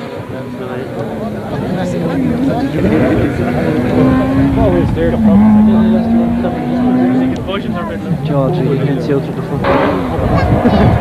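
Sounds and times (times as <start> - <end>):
rally car engine running hard: 0.0 - 11.0
spectators' voices: 0.0 - 11.0.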